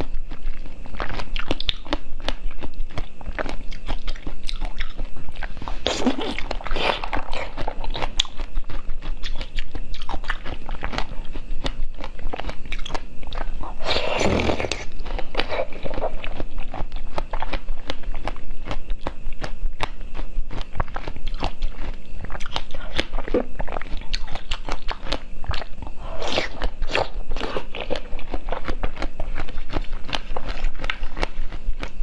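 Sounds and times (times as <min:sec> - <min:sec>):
chewing wet crunches: 0:00.0 - 0:32.0.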